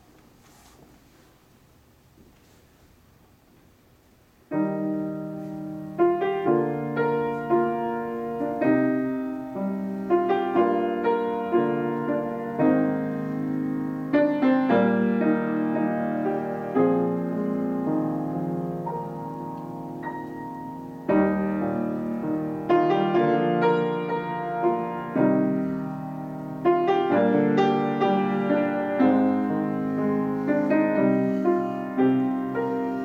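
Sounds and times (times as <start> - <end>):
grand piano playing chords: 4.4 - 33.0.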